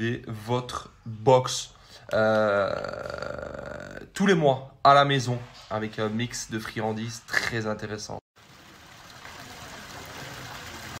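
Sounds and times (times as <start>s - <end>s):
fountain jets splashing into pool: 8.4s - 11.0s.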